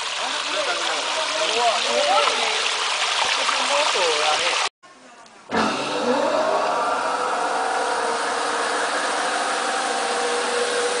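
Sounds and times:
spinning machine whine and hum: 0:05.6 - 0:11.0.

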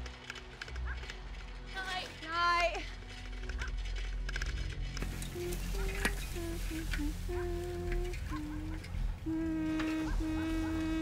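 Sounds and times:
low steady hum: 0:04.7 - 0:11.0.

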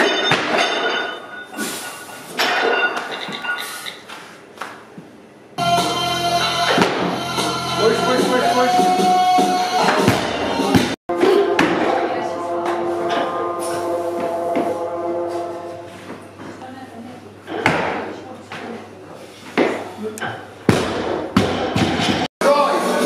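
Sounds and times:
background music: 0:05.6 - 0:16.0.

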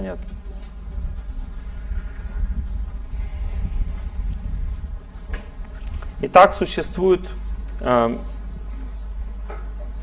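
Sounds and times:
faint buzzing hum: 0:00.0 - 0:10.0
low rumble: 0:00.2 - 0:06.2.

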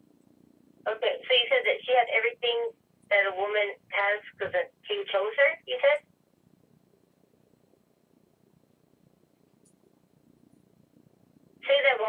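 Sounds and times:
faint telephone line hiss: 0:00.0 - 0:12.0
voice over telephone: 0:00.9 - 0:06.0, 0:11.7 - 0:12.0.

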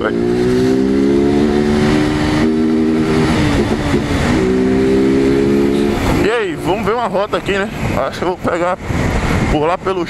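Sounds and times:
motorcycle engine running: 0:00.0 - 0:08.0
wind rush on microphone: 0:00.0 - 0:10.0.

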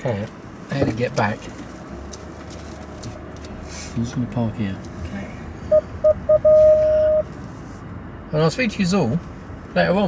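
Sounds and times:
parking sensor beeping: 0:05.7 - 0:07.3.

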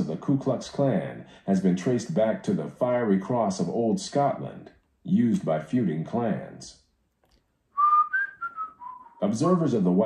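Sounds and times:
man whistling: 0:07.7 - 0:09.3.

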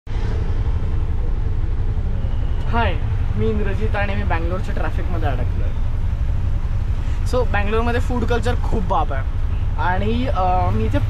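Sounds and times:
street traffic: 0:00.1 - 0:11.0.

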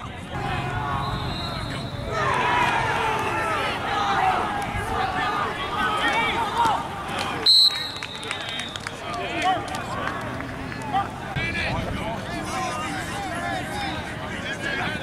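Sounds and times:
people talking and calling out: 0:00.0 - 0:15.0
shrill whistle blast: 0:01.0 - 0:02.1, 0:07.5 - 0:08.8.

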